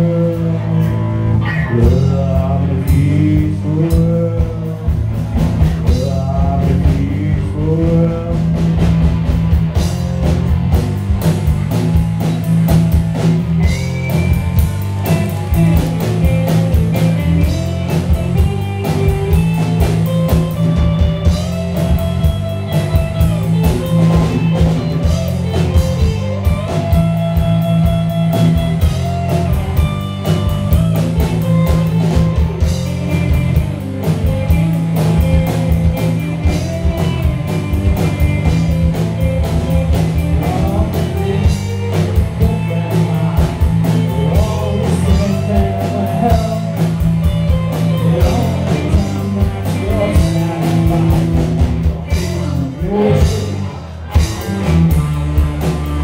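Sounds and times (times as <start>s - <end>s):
bass guitar: 0.0s - 56.0s
electric guitars: 0.0s - 56.0s
drum kit beat: 1.8s - 56.0s.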